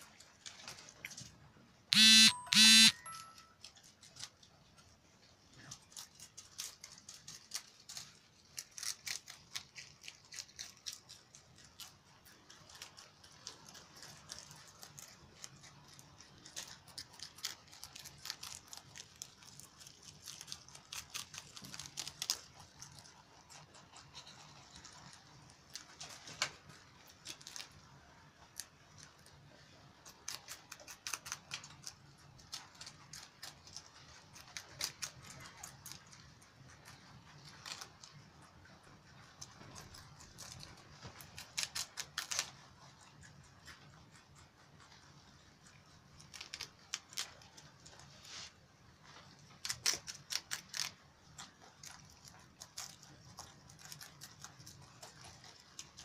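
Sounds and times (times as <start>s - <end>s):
rabbits crunching leafy stalks: 0.0s - 1.7s, 3.6s - 56.0s
short pitched calls: 2.0s - 3.2s.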